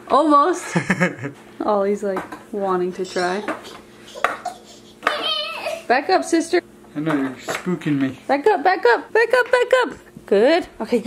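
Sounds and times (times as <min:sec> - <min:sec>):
toddler vocalizing: 0:03.1 - 0:05.9.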